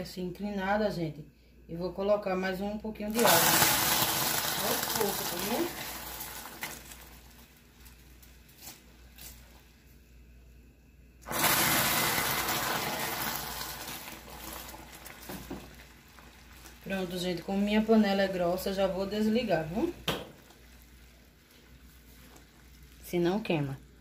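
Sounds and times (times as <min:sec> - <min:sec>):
hot caramel hissing: 0:03.2 - 0:08.2, 0:11.2 - 0:23.2.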